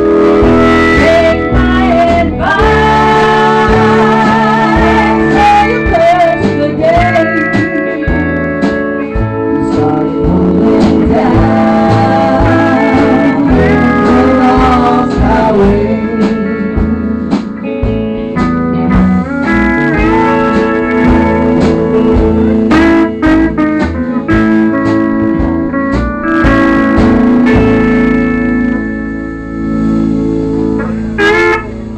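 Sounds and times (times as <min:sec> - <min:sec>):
country band playing: 0:00.0 - 0:31.9
pedal steel guitar: 0:00.0 - 0:31.9.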